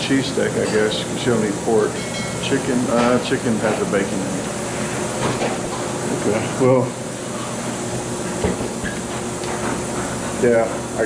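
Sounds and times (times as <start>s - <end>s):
ventilation hum and hiss: 0.0s - 11.0s.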